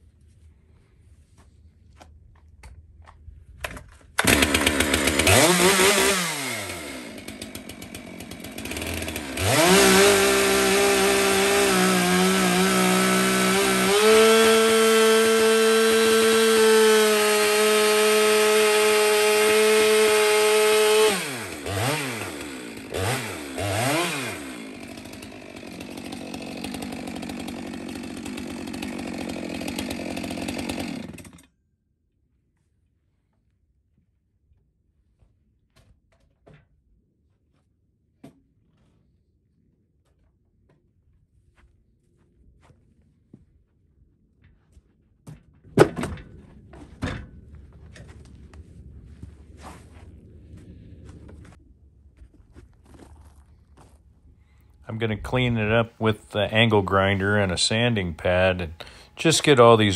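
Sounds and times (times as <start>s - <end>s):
chainsaw cutting log: 3.6s - 31.5s, 54.9s - 59.9s.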